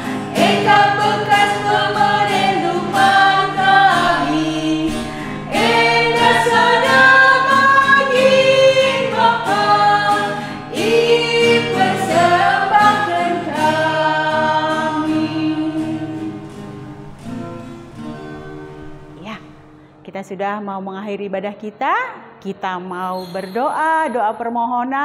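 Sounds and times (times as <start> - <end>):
women singing a hymn: 0.0 - 16.5
strummed acoustic guitar: 0.0 - 19.9.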